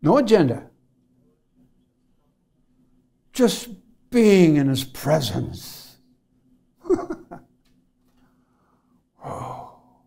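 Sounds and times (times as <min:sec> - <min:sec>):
man sighing: 0:09.2 - 0:10.0.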